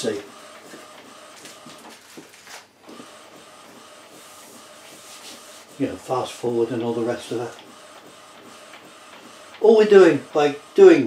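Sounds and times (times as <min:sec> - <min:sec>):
printer carriage motor running: 0:00.0 - 0:11.0.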